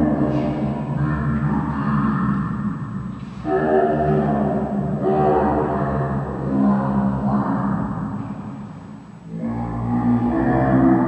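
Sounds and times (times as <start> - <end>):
low echoing drone: 0.0 - 11.0.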